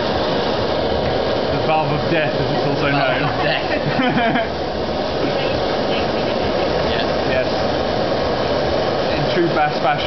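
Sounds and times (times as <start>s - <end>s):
blowtorch hissing: 0.0s - 10.0s.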